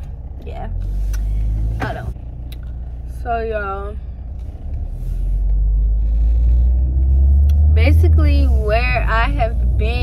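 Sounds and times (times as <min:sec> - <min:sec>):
car interior rumble: 0:00.0 - 0:10.0.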